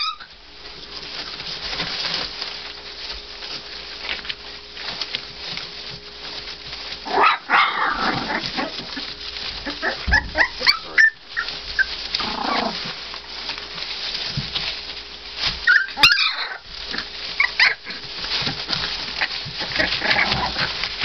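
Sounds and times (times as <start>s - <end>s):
puppies squealing and whimpering: 0.0s - 0.4s, 7.0s - 12.9s, 15.6s - 20.9s
rustling of paper bedding: 0.0s - 21.0s.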